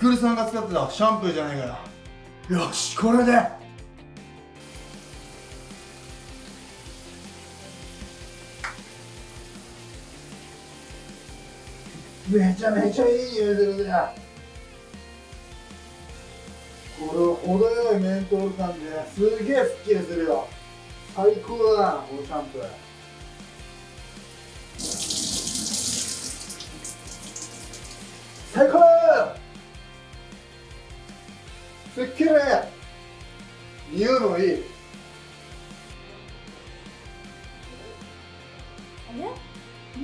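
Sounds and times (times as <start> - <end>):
soft background music: 0.0 - 40.0
shower water running: 4.6 - 29.7.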